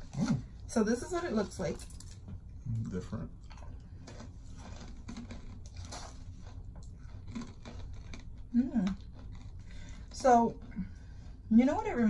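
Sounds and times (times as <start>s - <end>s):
people chewing crunchy snacks: 1.7s - 11.5s.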